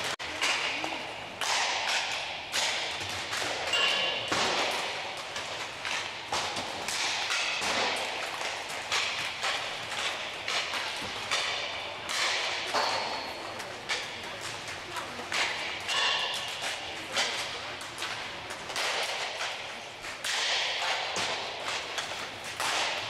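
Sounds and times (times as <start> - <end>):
hockey sticks hitting pucks: 0.0 - 23.0
pucks banging off rink boards: 0.0 - 23.0.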